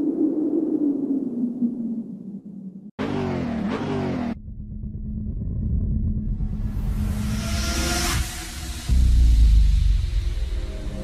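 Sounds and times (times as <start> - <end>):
low rumble with hum: 4.3 - 11.0
low steady drone: 4.3 - 11.0.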